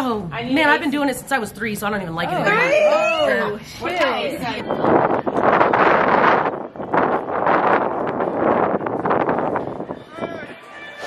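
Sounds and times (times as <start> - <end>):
wind buffeting microphone: 1.3 - 10.6.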